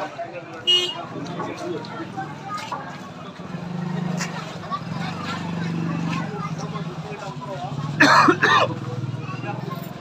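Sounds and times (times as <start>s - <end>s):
voices on busy street: 0.0s - 10.0s.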